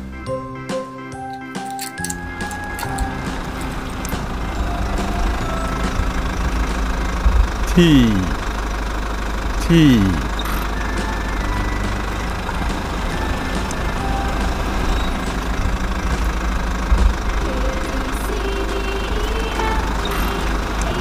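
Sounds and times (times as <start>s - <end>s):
engine idling rumble: 2.0s - 21.0s.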